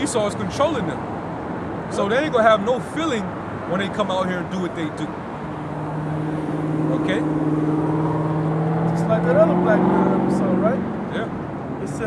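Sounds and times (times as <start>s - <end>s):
passing vehicle engine hum: 0.7s - 12.0s.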